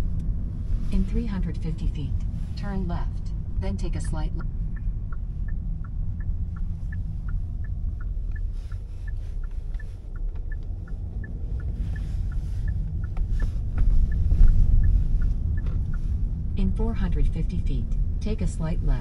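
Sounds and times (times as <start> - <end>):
car rolling rumble: 0.0 - 19.0
turn signal ticking: 0.0 - 19.0.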